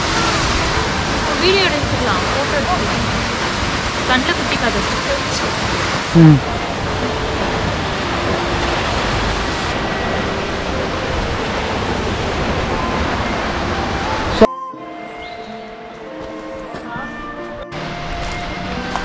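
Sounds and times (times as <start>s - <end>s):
waterfall rushing: 0.0s - 14.5s
background music: 0.0s - 19.0s.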